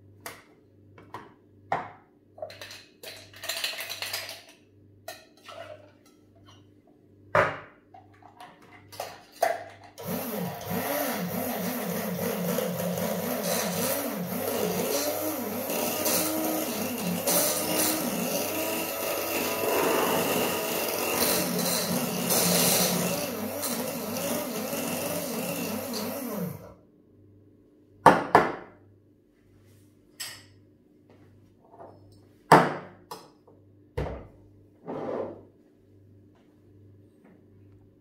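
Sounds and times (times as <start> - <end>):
drink mixer whipping ice: 10.0 - 26.7.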